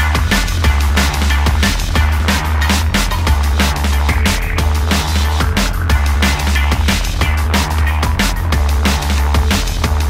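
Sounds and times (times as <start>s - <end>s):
drum and bass music: 0.0s - 10.0s.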